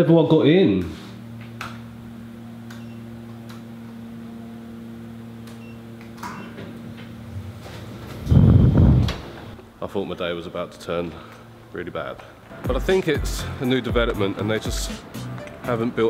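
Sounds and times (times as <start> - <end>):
lift electrical hum: 0.0 - 16.0
lift doors rumbling open: 5.5 - 9.6.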